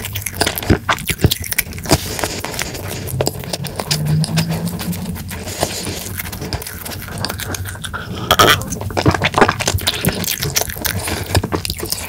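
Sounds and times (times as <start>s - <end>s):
close chewing: 0.0s - 12.0s.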